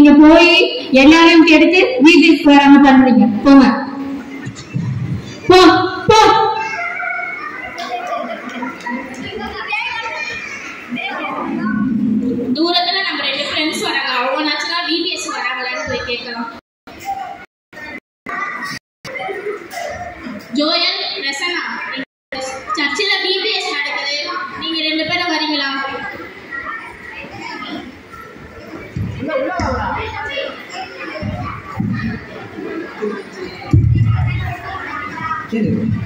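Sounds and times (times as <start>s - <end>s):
children talking and calling out: 0.0s - 36.0s.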